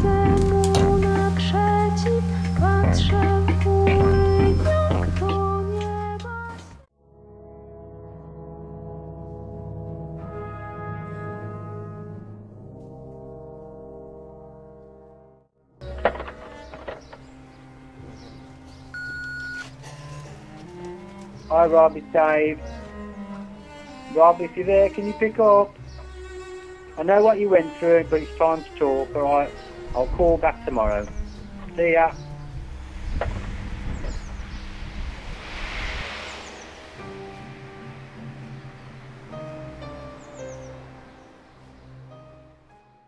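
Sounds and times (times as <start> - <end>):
low musical drone: 6.9 - 42.8
birds chirping: 15.8 - 42.6
answering machine beep: 18.9 - 19.7
vehicle passing: 30.6 - 42.1.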